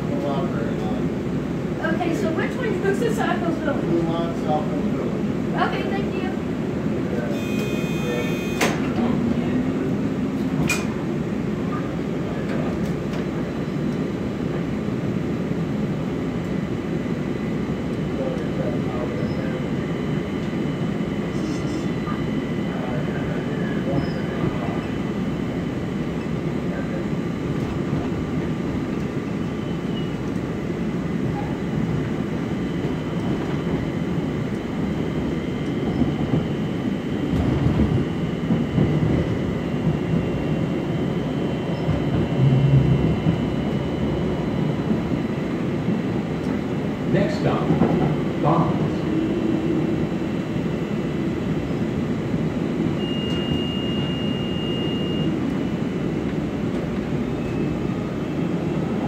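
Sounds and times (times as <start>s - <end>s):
rail car wheels rumbling: 0.0s - 59.0s.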